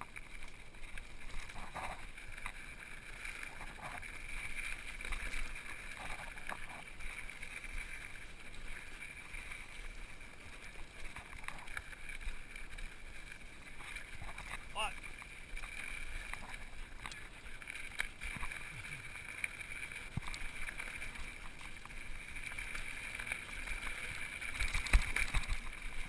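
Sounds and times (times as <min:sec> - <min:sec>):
bike rattling over bumps: 0:00.0 - 0:26.0
bike tyres on gravel: 0:00.0 - 0:26.0.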